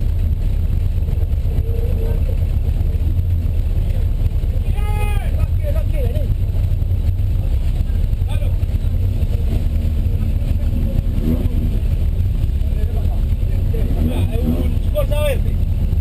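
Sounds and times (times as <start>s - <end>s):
car engine idling: 0.0s - 16.0s.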